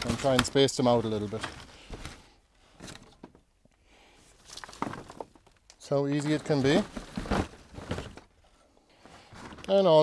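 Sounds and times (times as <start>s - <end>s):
rustling of plants: 4.3s - 8.3s.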